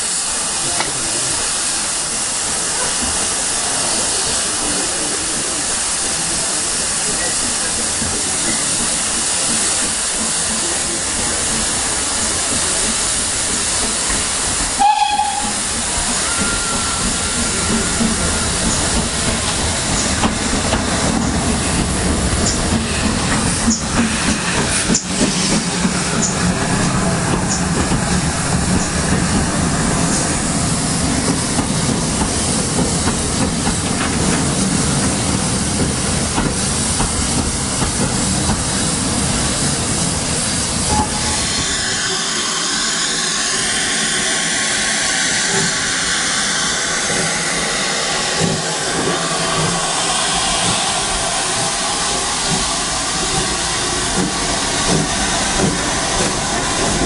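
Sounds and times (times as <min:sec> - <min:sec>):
passing steam locomotive rumble: 0:00.0 - 0:57.0
steam hiss: 0:00.0 - 0:57.0
steam train running: 0:00.0 - 0:57.0
rail clatter: 0:07.1 - 0:30.3, 0:46.7 - 0:57.0
train whistle: 0:14.8 - 0:18.8, 0:40.9 - 0:44.5.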